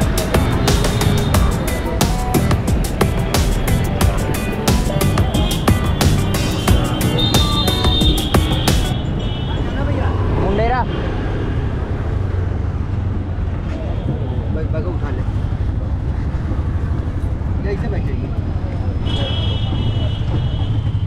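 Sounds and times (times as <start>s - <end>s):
background music: 0.0s - 9.0s
scattered voices: 0.0s - 10.7s
auto-rickshaw engine hum: 0.0s - 21.0s.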